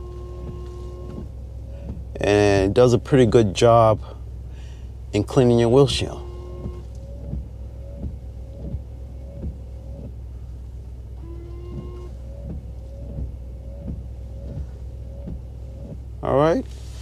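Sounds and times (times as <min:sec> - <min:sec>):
windshield wipers sweeping: 0:00.0 - 0:03.6, 0:05.2 - 0:17.0
steady low hum: 0:00.0 - 0:17.0
soft knock of wipers: 0:00.4 - 0:02.1, 0:06.5 - 0:10.2, 0:11.5 - 0:16.1.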